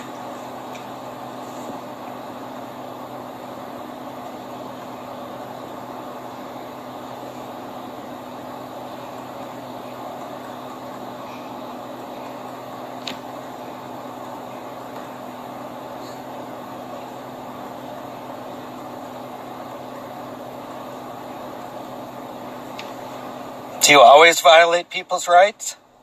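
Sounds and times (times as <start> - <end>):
car idling hum: 0.0 - 26.0
fan-like hiss: 0.0 - 26.0.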